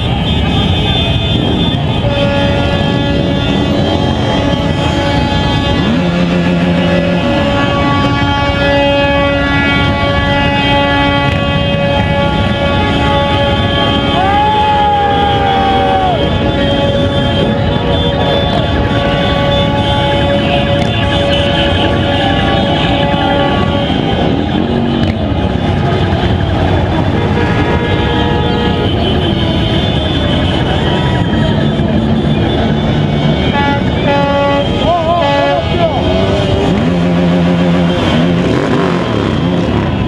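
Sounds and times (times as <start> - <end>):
horn blasts and tooting: 0.0 - 40.0
motorcycle engines running: 0.0 - 40.0
crowd shouting: 11.3 - 36.7.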